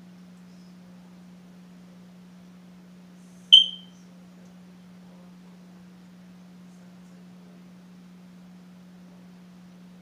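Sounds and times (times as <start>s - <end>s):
faint steady low hum: 0.0s - 10.0s
high electronic chirp: 3.5s - 3.9s.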